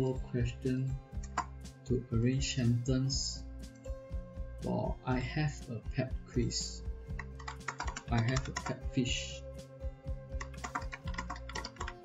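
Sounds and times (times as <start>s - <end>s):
background music: 0.0s - 12.0s
typing on computer keyboard: 7.2s - 8.8s, 10.4s - 12.0s.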